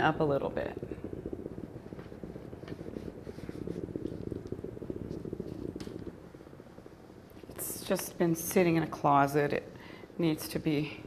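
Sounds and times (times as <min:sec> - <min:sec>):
garment steamer pump buzzing: 0:00.0 - 0:11.0.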